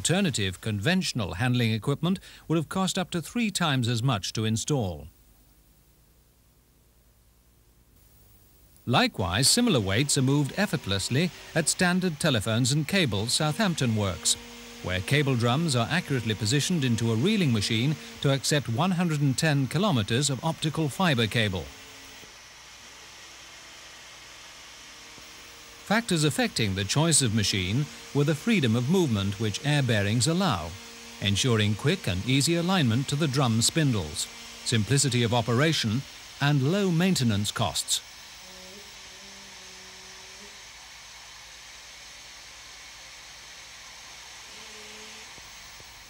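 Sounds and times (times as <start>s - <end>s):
faint hiss: 0.0s - 46.0s
compressed air hissing: 9.4s - 18.7s.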